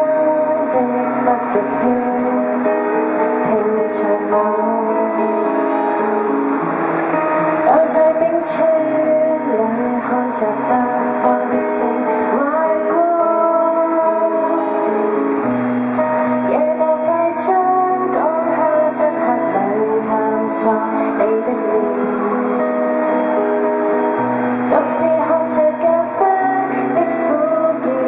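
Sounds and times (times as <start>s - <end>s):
woman singing: 0.0s - 6.1s, 7.4s - 15.4s, 16.0s - 28.0s
acoustic guitar: 0.0s - 28.0s.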